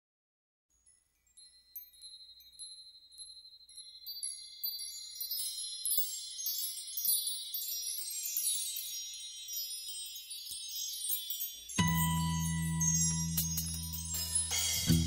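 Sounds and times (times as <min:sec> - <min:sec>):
high tinkling chimes: 0:00.7 - 0:15.0.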